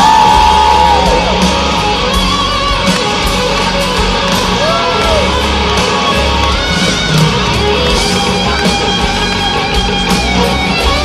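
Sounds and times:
electric guitar solo: 0.0 - 11.0
live rock band playing: 0.0 - 11.0.

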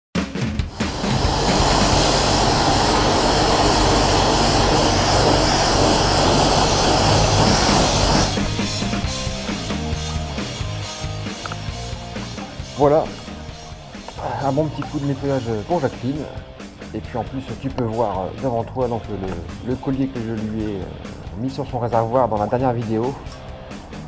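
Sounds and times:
background music with steady beat: 0.2 - 24.0
pressure washer spraying water: 0.6 - 16.9.

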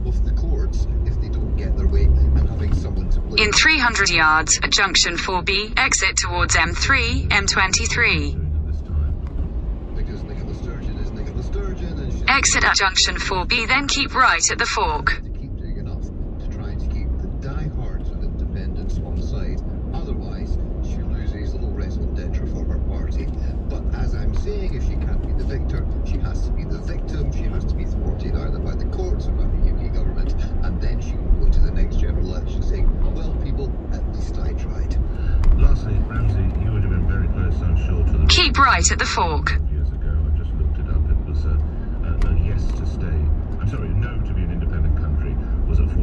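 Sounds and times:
faint talk: 0.0 - 9.2, 10.0 - 46.0
car road and engine rumble: 0.0 - 46.0.

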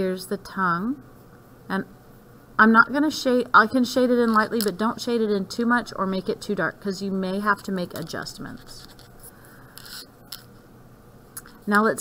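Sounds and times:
pencil scraping on paper: 7.9 - 10.1.

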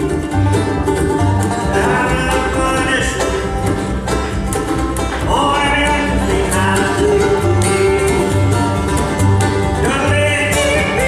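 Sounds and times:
bluegrass band playing: 0.0 - 11.0
upright bass plucking: 0.0 - 11.0.

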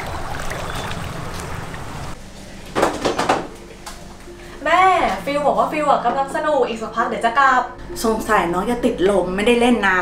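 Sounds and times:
water splashing: 0.0 - 2.2.

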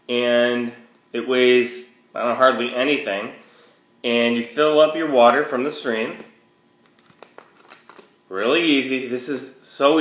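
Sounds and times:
plastic bottle crinkling: 6.2 - 8.2.

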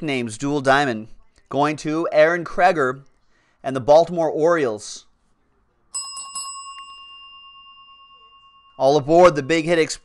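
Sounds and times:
small metal bell ringing: 6.0 - 10.0.

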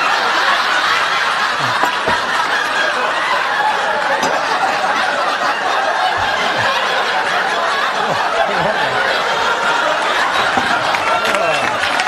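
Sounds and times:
studio audience laughing: 0.0 - 12.0.

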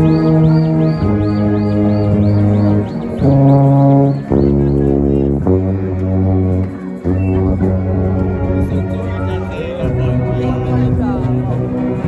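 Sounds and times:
brass band playing low chords: 0.0 - 12.0.

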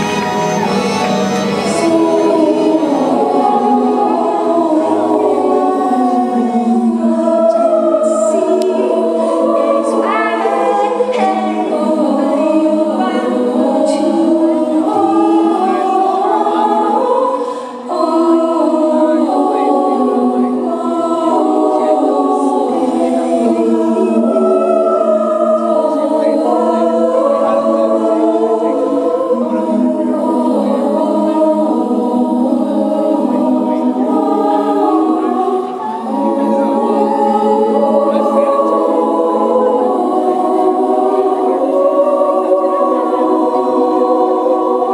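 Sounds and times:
women's choir singing: 0.0 - 44.9.

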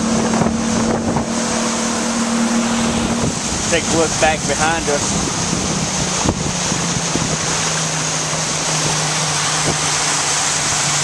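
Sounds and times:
outboard motor humming: 0.0 - 11.0
rushing water from wake: 0.0 - 11.0
wind on microphone: 0.0 - 11.0.

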